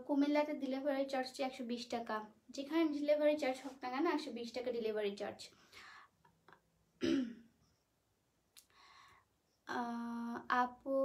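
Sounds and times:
woman clearing her throat: 0:07.0 - 0:07.5.

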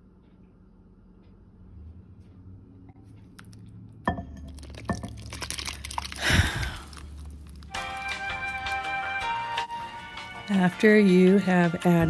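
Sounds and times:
wet batter splat: 0:04.5 - 0:08.1.

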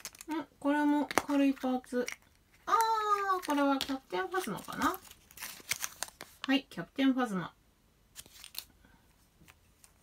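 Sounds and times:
paper rustling: 0:03.1 - 0:06.5, 0:08.2 - 0:08.7.

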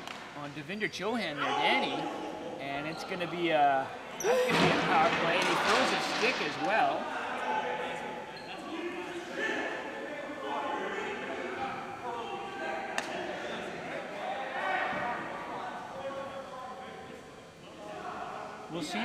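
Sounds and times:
voices chattering in a gym hall: 0:00.0 - 0:19.0.

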